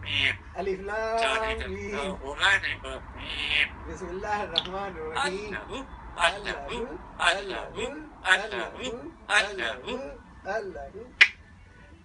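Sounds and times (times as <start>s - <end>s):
parrot mumbling speech-like sounds: 0.0s - 0.6s, 1.2s - 3.8s, 4.6s - 10.2s.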